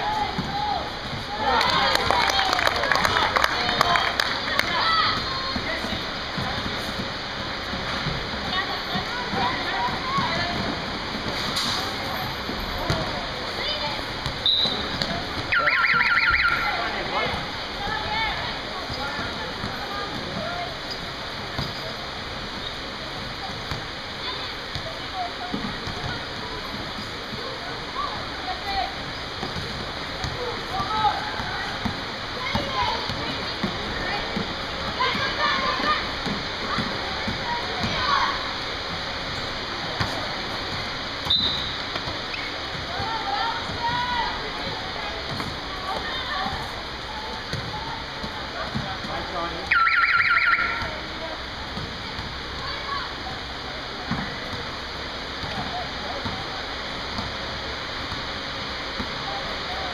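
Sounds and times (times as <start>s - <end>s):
scattered voices: 0.0s - 41.2s, 41.8s - 49.8s
crowd noise in hall: 0.0s - 59.9s
basketball bouncing on court: 3.6s - 11.4s, 12.0s - 16.6s, 17.2s - 20.7s, 21.5s - 21.9s, 22.6s - 38.2s, 39.8s - 49.3s, 50.7s - 52.8s, 54.0s - 54.7s, 55.4s - 56.5s, 57.1s - 57.4s
trilling referee's whistle: 14.4s - 14.8s, 15.5s - 16.6s, 41.3s - 41.8s, 49.7s - 50.8s.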